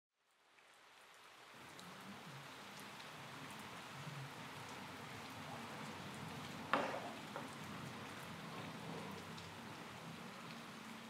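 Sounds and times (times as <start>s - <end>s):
rain: 0.1s - 11.0s.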